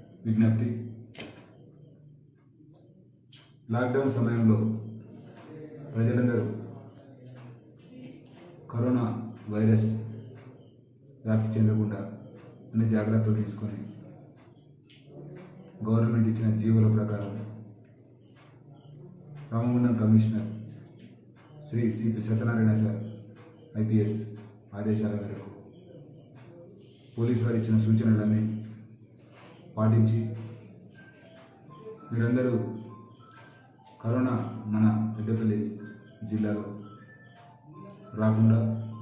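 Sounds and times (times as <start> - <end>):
man speaking: 0.2 - 0.8, 23.8 - 25.6, 27.1 - 28.8, 29.8 - 30.6, 32.0 - 32.9, 34.0 - 36.9, 37.8 - 39.0.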